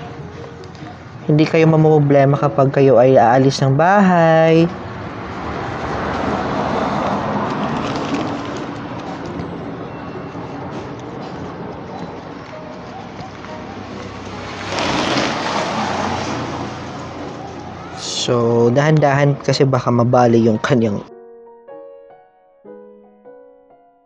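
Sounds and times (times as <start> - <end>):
road traffic rushing: 0.0 - 20.6.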